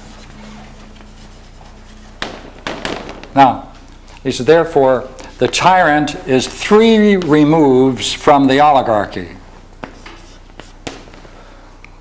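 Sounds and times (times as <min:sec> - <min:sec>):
chalk scratching on chalkboard: 0:00.0 - 0:02.2, 0:09.9 - 0:11.0.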